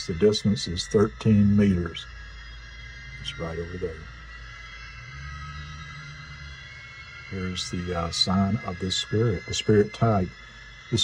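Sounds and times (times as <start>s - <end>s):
faint high steady tone: 0.0s - 11.0s
low ambient drone: 0.0s - 11.0s.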